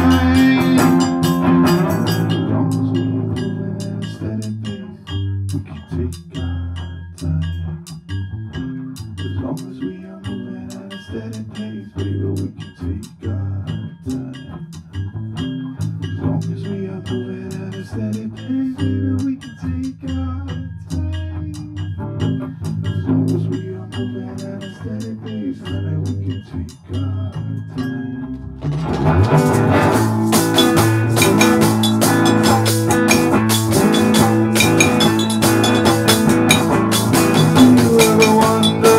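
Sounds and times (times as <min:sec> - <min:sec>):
drums and cymbals: 0:00.0 - 0:03.1, 0:28.6 - 0:38.9
bass guitar: 0:00.0 - 0:38.9
guitar: 0:00.0 - 0:38.9
percussion ticks: 0:00.0 - 0:38.9.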